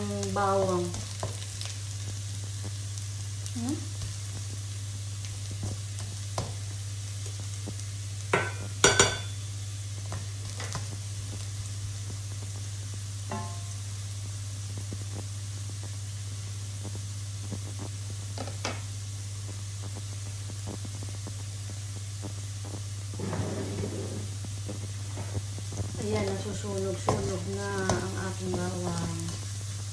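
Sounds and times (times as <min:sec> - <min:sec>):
garlic sizzling in oil: 0:00.0 - 0:29.9
spatula knocking against pan: 0:13.3 - 0:13.7.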